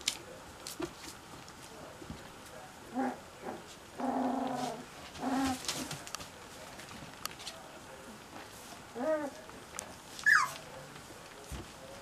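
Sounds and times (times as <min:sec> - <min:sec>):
puppies whimpering: 0:10.2 - 0:10.6.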